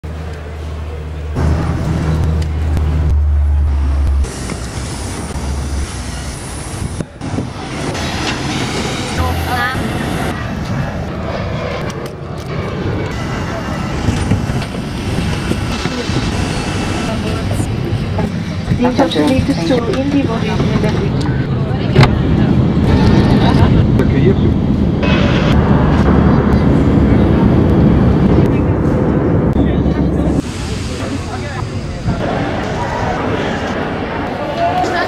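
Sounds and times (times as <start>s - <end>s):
strong low hum: 0.0s - 35.0s
vehicle noise: 0.0s - 35.0s
people talking: 9.0s - 11.0s, 13.1s - 35.0s.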